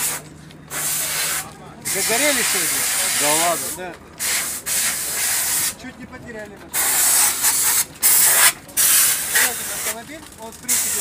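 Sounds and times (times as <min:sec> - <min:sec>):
loud hissing spray: 0:00.0 - 0:05.8, 0:06.7 - 0:10.0, 0:10.6 - 0:11.0.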